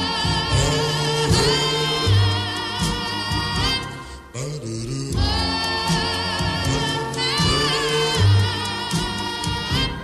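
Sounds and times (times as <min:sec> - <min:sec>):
doo-wop vocal group ballad: 0:00.0 - 0:10.0.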